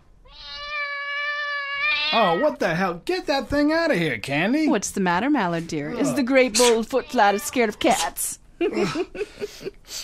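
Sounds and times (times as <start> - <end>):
cat meowing: 0.2 - 2.4, 5.9 - 8.1.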